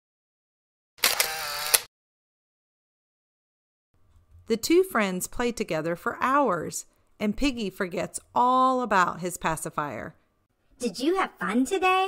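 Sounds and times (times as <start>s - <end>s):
camera shutter clicks and wind-on whir: 1.0s - 1.9s.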